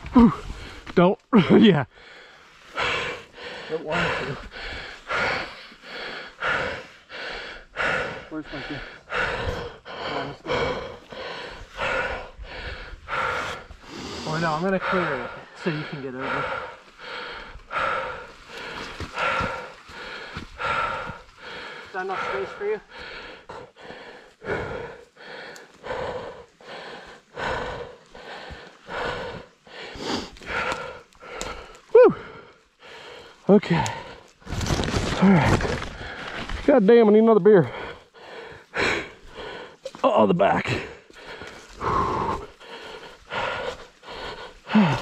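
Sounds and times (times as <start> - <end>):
man groaning: 0.0 - 0.4, 31.9 - 32.3, 44.7 - 45.0
person breathing heavily: 0.0 - 36.8, 37.4 - 45.0.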